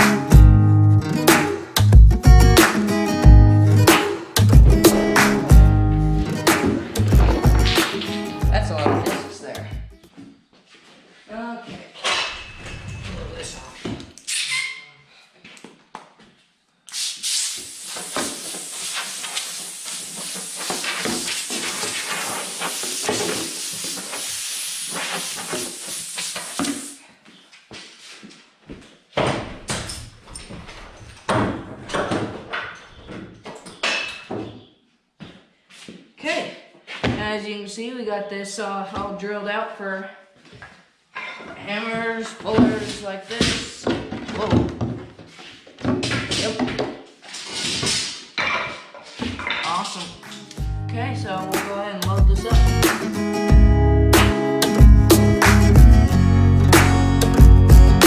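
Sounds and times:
guitar music: 0.0s - 10.0s, 50.3s - 58.0s
steady hissing: 16.9s - 27.0s.

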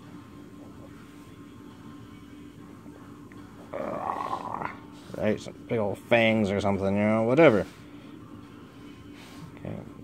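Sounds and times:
man growling like a monster: 3.7s - 4.8s.

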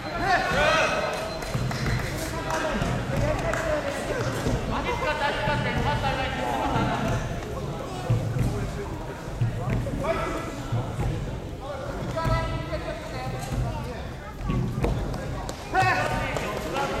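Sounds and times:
repeated low thumps: 4.1s - 16.0s.

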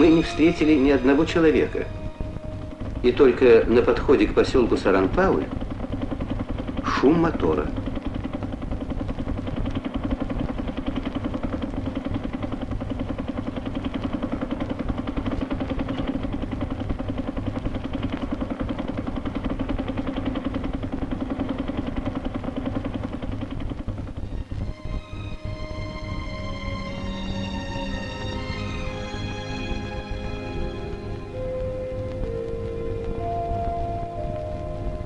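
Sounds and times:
engine running steadily: 0.0s - 35.0s.

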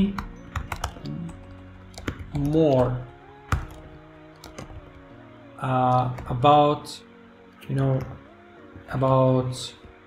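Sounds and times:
computer keyboard keystrokes: 0.0s - 5.1s.

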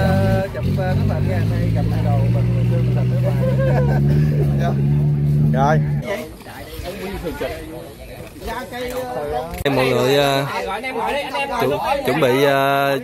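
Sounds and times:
engine running: 0.0s - 6.0s
voices: 0.0s - 13.0s.

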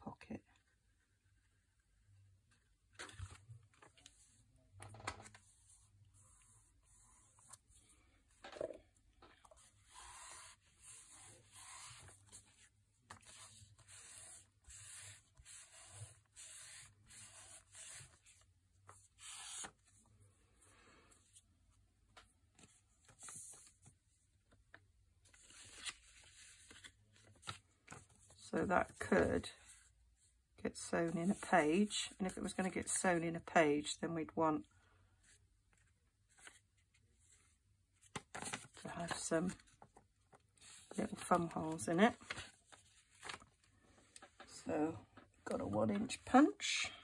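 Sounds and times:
paper rubbing and rustling: 9.5s - 20.0s, 25.3s - 29.8s, 38.0s - 39.9s, 40.6s - 44.5s.

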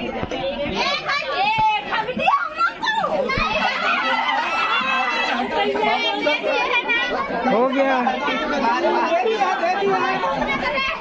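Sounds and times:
crowd excited chatter: 0.0s - 11.0s.

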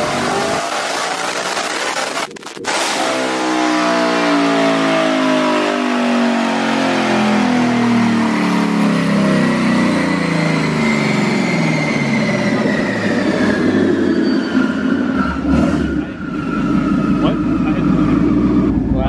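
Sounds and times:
car engine winding down: 0.0s - 19.0s
high whine falling in pitch: 0.0s - 19.0s.

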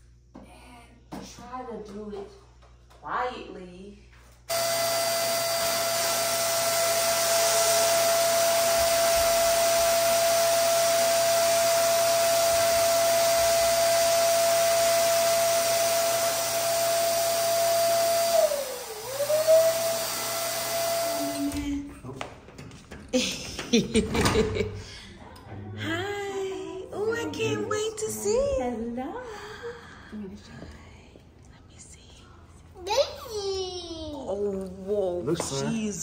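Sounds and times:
electric balloon pump whining: 4.5s - 21.8s.

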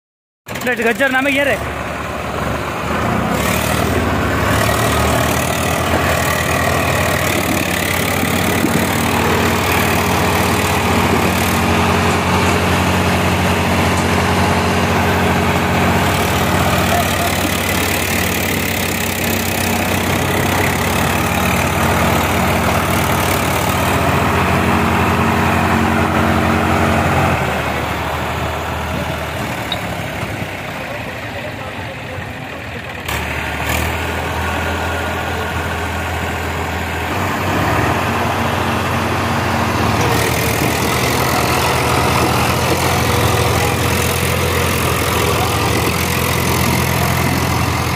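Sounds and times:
tractor diesel engine under load: 0.4s - 47.9s.

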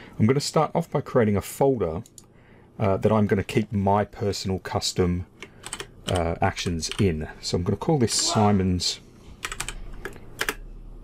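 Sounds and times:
keyboard typing: 5.4s - 7.2s, 9.4s - 10.6s.

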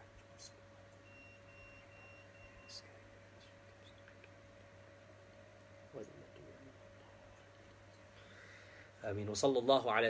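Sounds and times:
low electrical hum: 0.0s - 10.0s
soft hiss: 0.0s - 10.0s
faint broken high tone: 1.0s - 2.9s.

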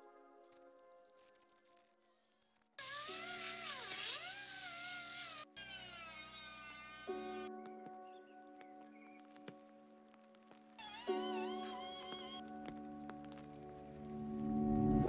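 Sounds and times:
background music: 0.0s - 2.1s, 2.8s - 15.0s
welder buzzing and crackling: 2.8s - 7.5s, 10.8s - 12.4s.

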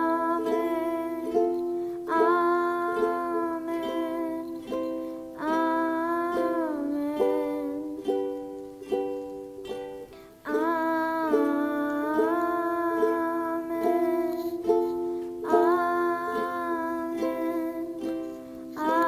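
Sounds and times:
boy singing: 0.0s - 9.0s, 10.3s - 19.0s
ukuleles strummed slowly: 0.0s - 19.0s.

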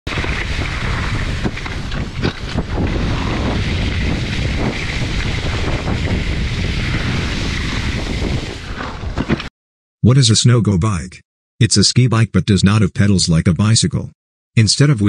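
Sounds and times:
skis scraping on packed snow: 0.1s - 9.5s
wind buffeting microphone: 0.1s - 9.5s.

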